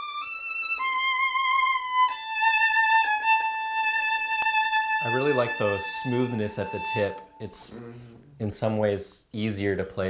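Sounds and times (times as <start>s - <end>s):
solo violin bowed notes: 0.0s - 7.8s.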